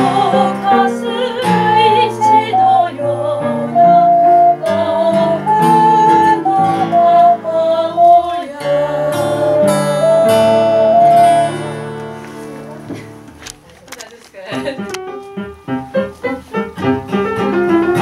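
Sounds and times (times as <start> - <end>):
woman singing: 0.0 - 11.6
ocarina melody: 0.0 - 13.0, 14.5 - 18.0.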